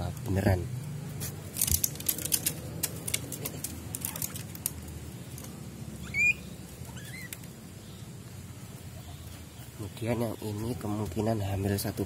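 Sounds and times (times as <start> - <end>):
guinea pig squeaking: 6.0 - 7.4.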